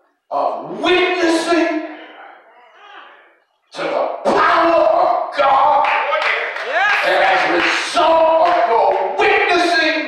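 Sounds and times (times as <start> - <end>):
man preaching through a microphone: 0.2 - 10.0.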